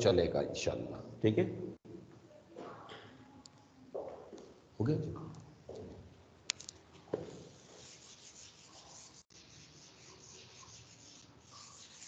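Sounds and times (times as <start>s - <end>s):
marker writing on a whiteboard: 7.2s - 12.0s.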